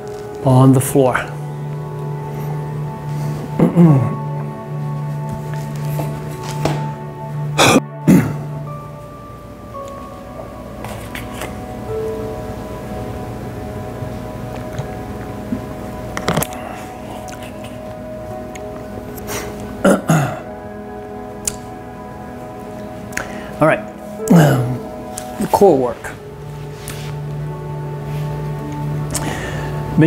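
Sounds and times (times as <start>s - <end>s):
soft background music: 0.0s - 30.0s
man making throaty sounds: 3.5s - 4.3s, 24.2s - 24.9s
man clearing his throat: 3.6s - 4.2s, 7.6s - 8.4s, 19.8s - 20.5s.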